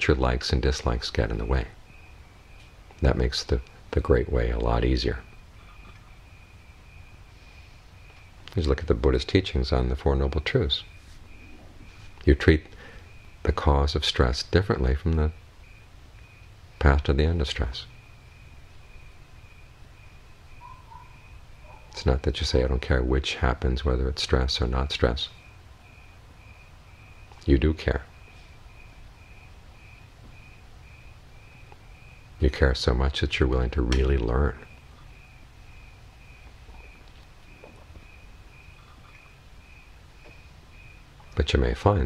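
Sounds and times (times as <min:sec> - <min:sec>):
high pulsing chirp: 0:00.0 - 0:42.0
low steady hum: 0:00.0 - 0:42.0.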